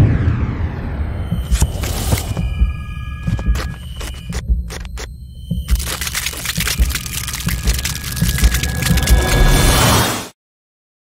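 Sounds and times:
deep pulses: 0.0s - 9.8s
sharp clicks: 1.4s - 9.5s.

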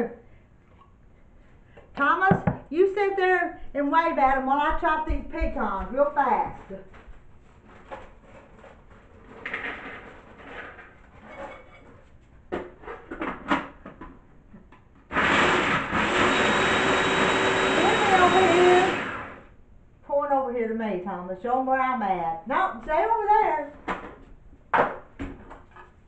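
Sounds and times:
electric food chopper chopping nuts: 15.1s - 19.5s.

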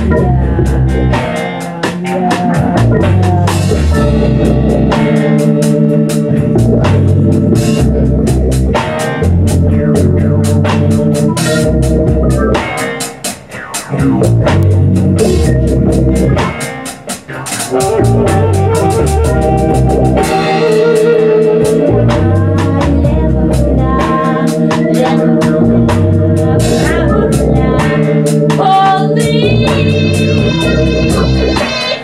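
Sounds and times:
low bass notes: 0.0s - 13.1s, 13.8s - 16.8s, 17.6s - 31.8s
drum strikes: 0.0s - 23.2s
live band playing: 0.0s - 32.0s.

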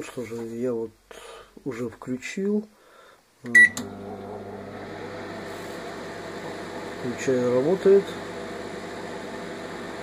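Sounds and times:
microwave oven humming: 3.4s - 10.0s.

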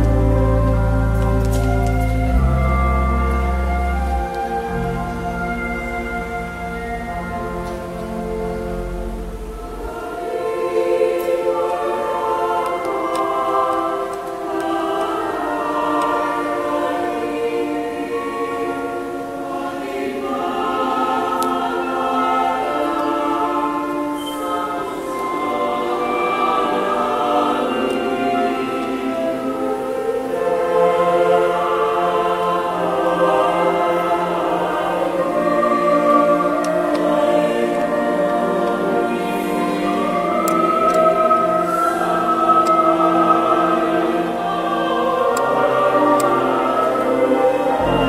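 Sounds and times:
instrumental ensemble: 0.0s - 31.0s, 31.7s - 48.0s
mixed choir singing chords: 0.0s - 48.0s.

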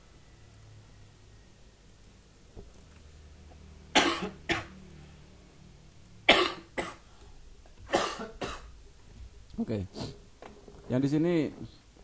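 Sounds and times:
man coughing: 4.0s - 4.7s, 6.3s - 7.0s, 7.9s - 8.7s.

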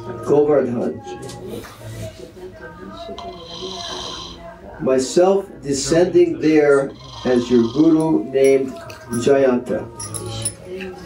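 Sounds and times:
quiet background speech: 0.0s - 11.0s.

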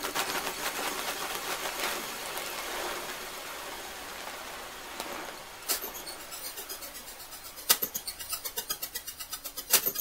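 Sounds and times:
even hiss: 0.0s - 10.0s.

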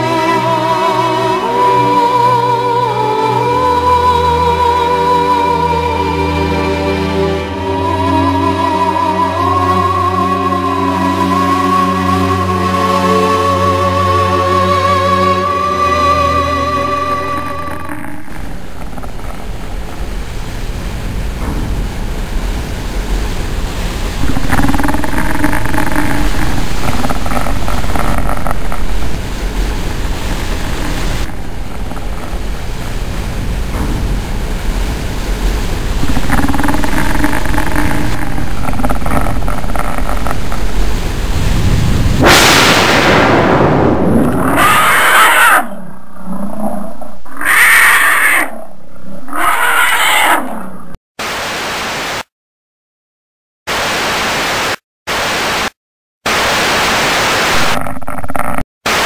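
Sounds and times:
noisy rumble: 15.7s - 51.0s
rising rush of noise: 16.6s - 52.3s
static hiss bursts: 16.9s - 43.2s, 51.2s - 52.3s, 53.7s - 59.0s
growling creature roars: 44.0s - 51.0s
loud cries: 44.6s - 45.7s, 49.3s - 50.5s.

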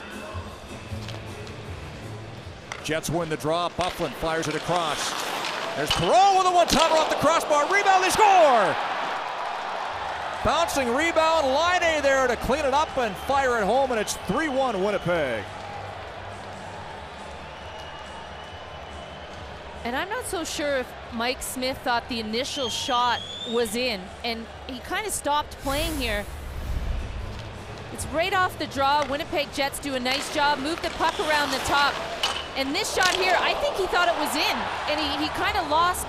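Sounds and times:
crowd noise: 5.5s - 36.0s.

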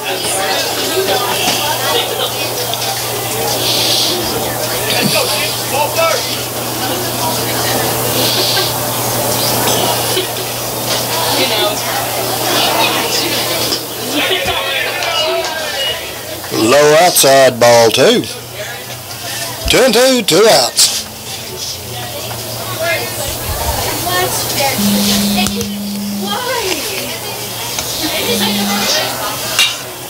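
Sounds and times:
spectators talking: 0.0s - 30.0s
steady low hum: 24.8s - 26.8s, 28.1s - 29.1s.

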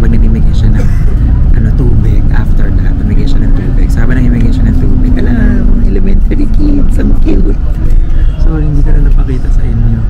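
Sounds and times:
bus engine and road noise: 0.0s - 10.0s.

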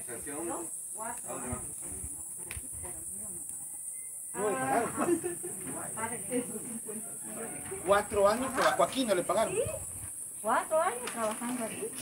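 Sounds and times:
people talking: 0.0s - 3.7s, 4.4s - 9.8s, 10.4s - 12.0s
high-pitched insect chorus: 0.0s - 12.0s.

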